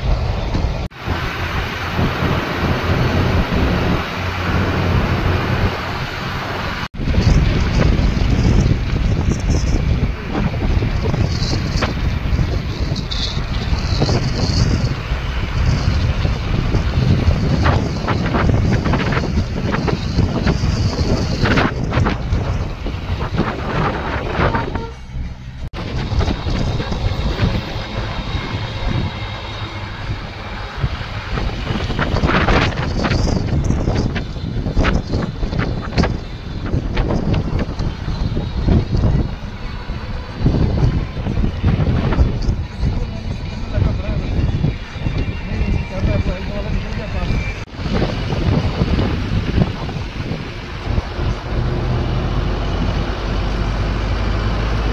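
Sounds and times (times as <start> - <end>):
low road and engine rumble: 0.0 - 54.9
wind buffeting microphone: 0.0 - 54.9.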